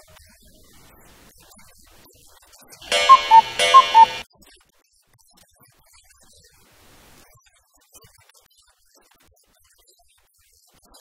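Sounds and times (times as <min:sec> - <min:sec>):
electronic alarm beep: 0:02.9 - 0:04.2.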